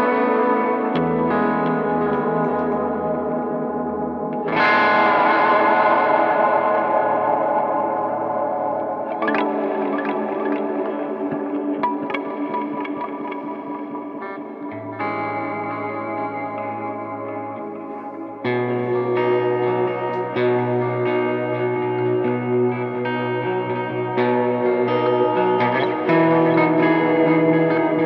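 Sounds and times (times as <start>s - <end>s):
overdriven electric guitar chords: 0.0s - 28.0s.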